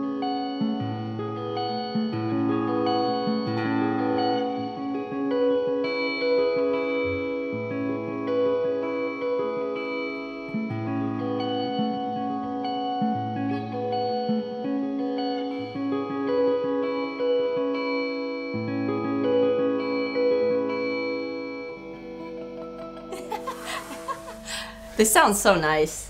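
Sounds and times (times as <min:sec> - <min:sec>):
electric guitar riff: 0:00.0 - 0:25.2.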